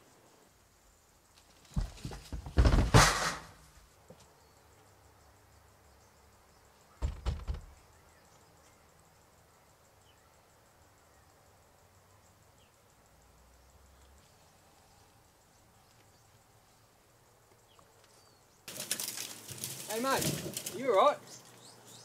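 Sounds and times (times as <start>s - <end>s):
leaves and branches rustling: 1.2s - 4.4s, 13.9s - 22.0s.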